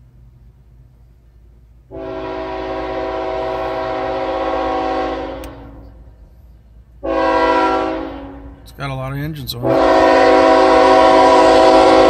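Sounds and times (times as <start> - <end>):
locomotive air horn blasts: 1.9 - 6.1, 7.0 - 8.6, 9.6 - 12.0.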